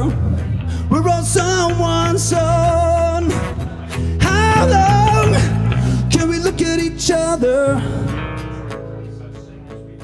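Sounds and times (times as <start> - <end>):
man singing: 0.0 - 9.4
acoustic guitar: 0.0 - 10.0
bass guitar: 0.0 - 10.0.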